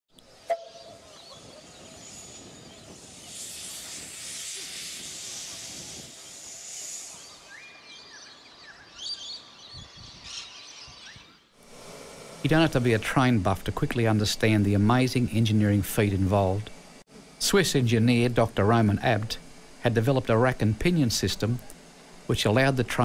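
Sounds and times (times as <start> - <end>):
steam hissing: 0.2 - 8.0, 11.6 - 23.0.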